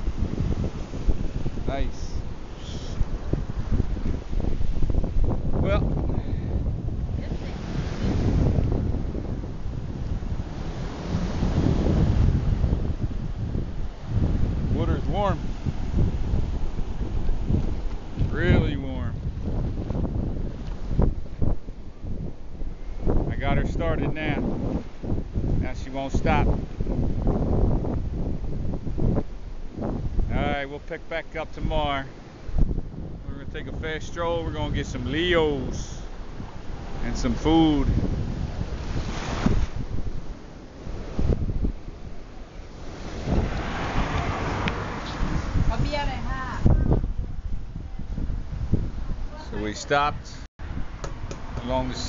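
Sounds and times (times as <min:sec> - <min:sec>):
small waves washing on sand: 0:00.0 - 0:05.5, 0:06.1 - 0:22.0, 0:23.6 - 0:32.8, 0:34.7 - 0:46.8
wind buffeting microphone: 0:00.0 - 0:52.0.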